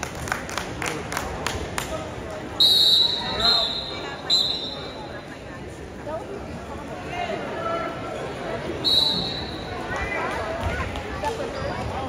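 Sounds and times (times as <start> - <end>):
shrill whistle blown: 2.6 - 5.0, 8.8 - 9.7.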